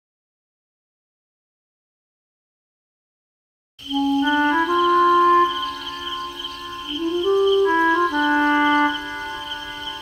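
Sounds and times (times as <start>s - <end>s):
slow melody of held notes: 3.9s - 10.0s.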